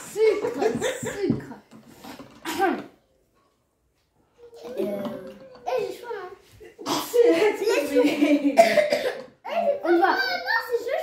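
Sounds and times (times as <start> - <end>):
children laughing: 0.0 - 1.4, 6.6 - 10.4
child coughing: 2.4 - 2.9, 6.8 - 7.5, 8.4 - 9.4
children chattering: 4.2 - 11.0.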